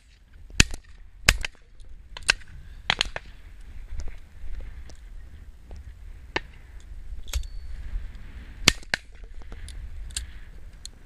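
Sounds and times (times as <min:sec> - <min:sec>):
wind rumble on microphone: 0:00.0 - 0:11.0
shotgun shots: 0:08.6 - 0:09.1.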